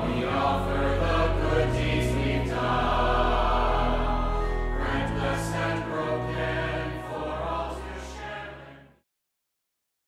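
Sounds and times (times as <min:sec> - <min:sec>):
choir singing: 0:00.0 - 0:09.0.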